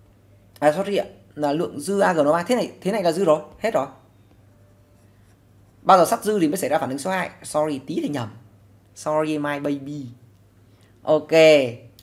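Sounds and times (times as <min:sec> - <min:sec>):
man talking: 0:05.8 - 0:08.4.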